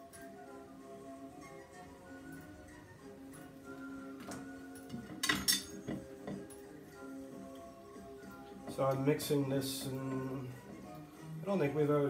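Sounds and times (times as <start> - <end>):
background music with sustained tones: 0.0 - 12.0
tool clinking against a plate: 4.9 - 6.5.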